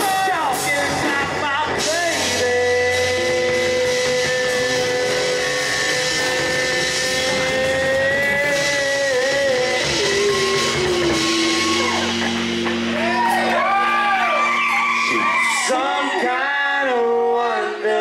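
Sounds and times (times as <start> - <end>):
electric guitar: 0.0 - 16.4
bass guitar: 0.0 - 18.0.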